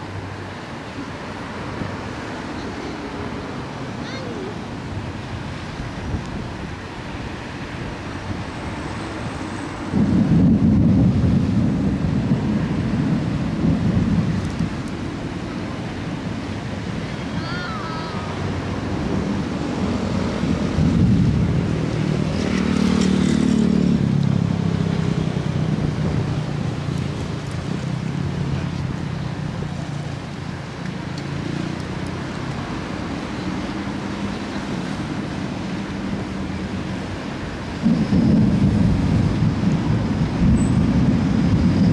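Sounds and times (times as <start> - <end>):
wind: 0.0 - 41.9
thunder rumbling: 9.3 - 29.8, 37.4 - 41.9.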